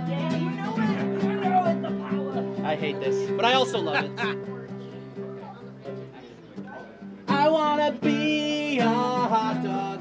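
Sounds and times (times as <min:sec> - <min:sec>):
acoustic guitar chord ringing: 0:00.0 - 0:06.1.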